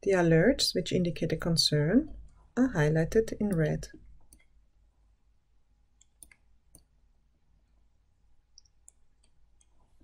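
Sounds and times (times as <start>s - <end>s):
computer mouse clicks: 3.4s - 4.6s, 6.0s - 6.9s, 8.6s - 9.8s.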